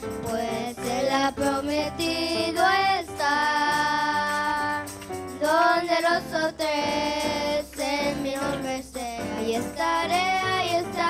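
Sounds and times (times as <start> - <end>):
girls singing worship song: 0.2 - 11.0.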